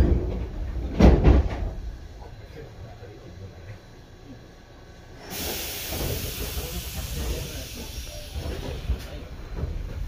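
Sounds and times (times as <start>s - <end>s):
low rumble of train: 0.0s - 10.0s
loud steady hiss: 5.2s - 9.2s.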